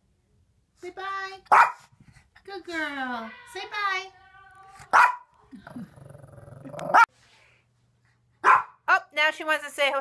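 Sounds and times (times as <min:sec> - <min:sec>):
sharp dog bark: 0:01.5 - 0:01.9, 0:04.9 - 0:05.3, 0:08.4 - 0:08.8
dog growling low: 0:05.5 - 0:07.0.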